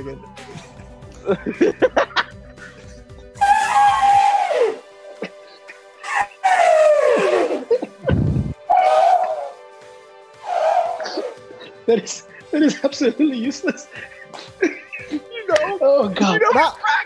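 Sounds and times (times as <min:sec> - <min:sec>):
man imitating elephant trumpeting: 0:03.4 - 0:04.8, 0:06.0 - 0:09.6, 0:10.5 - 0:11.4
short low thump: 0:08.1 - 0:08.6.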